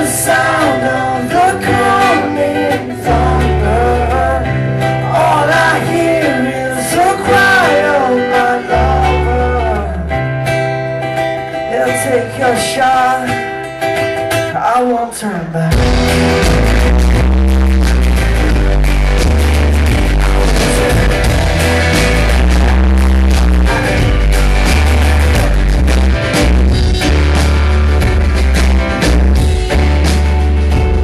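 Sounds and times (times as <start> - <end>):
live rock band playing: 0.0 - 31.0.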